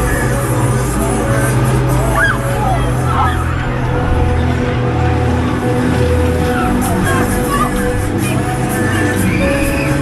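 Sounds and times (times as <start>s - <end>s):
loud fairground ride music: 0.0s - 10.0s.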